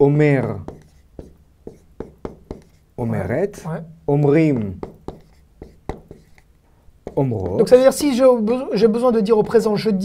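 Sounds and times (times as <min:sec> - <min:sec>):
marker pen writing on board: 0:00.2 - 0:02.9, 0:04.3 - 0:10.0.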